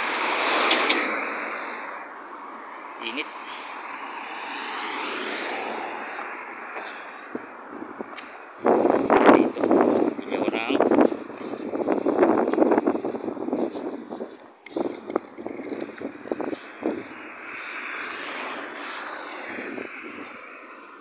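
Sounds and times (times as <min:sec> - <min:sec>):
passing vehicle engine rushing: 0:00.0 - 0:14.1, 0:14.7 - 0:21.0
gusty noise: 0:03.8 - 0:21.0.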